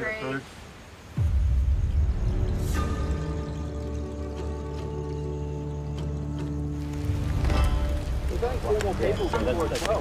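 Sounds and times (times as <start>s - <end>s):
voices talking: 0.0s - 0.6s, 7.5s - 10.0s
campfire crackling and popping: 3.1s - 10.0s.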